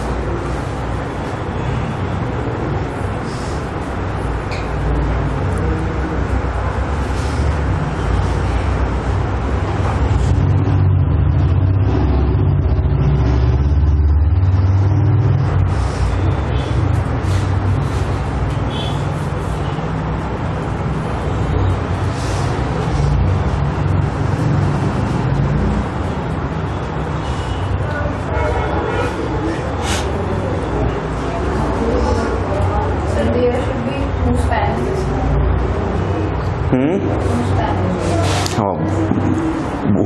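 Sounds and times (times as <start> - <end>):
low rumble with hum: 0.0 - 27.8.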